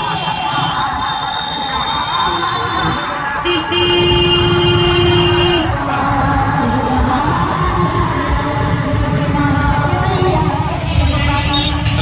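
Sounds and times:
vehicle horn: 2.3s - 5.7s, 11.1s - 12.0s.

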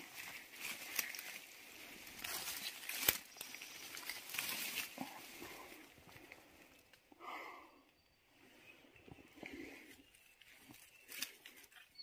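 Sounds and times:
leaves and ferns rustling: 0.0s - 7.1s, 8.2s - 12.0s.

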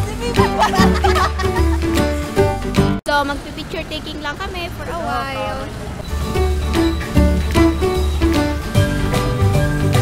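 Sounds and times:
road traffic hum: 0.0s - 10.0s
woman talking: 3.1s - 5.7s.

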